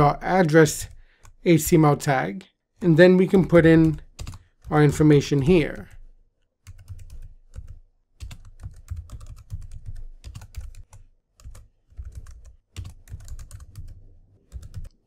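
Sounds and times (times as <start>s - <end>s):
computer keyboard typing: 3.6s - 5.0s, 6.6s - 15.0s.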